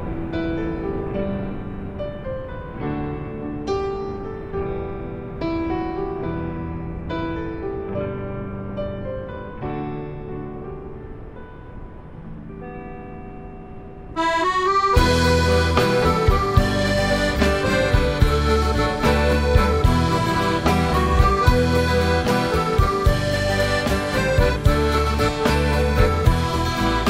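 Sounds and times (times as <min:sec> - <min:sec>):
soft keyboard notes: 0:00.0 - 0:27.0
band playing with accordion: 0:14.2 - 0:27.0.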